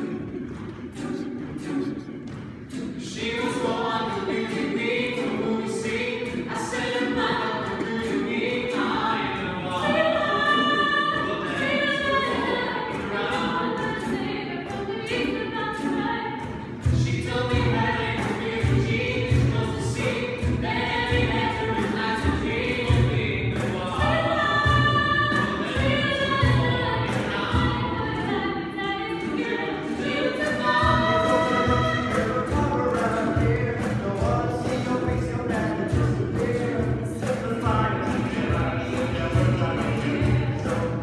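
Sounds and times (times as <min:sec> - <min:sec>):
a cappella ensemble singing: 0:00.0 - 0:41.0.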